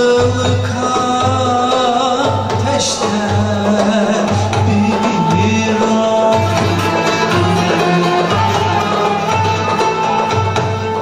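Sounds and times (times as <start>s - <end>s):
low drum beat: 0.0s - 11.0s
plucked oud: 0.0s - 11.0s
plucked long-necked lute: 2.5s - 11.0s.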